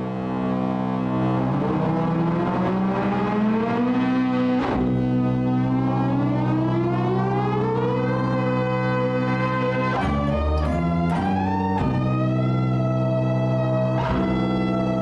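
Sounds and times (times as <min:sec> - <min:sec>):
low held synth notes: 0:00.0 - 0:15.0
synth note sliding upward: 0:00.0 - 0:15.0.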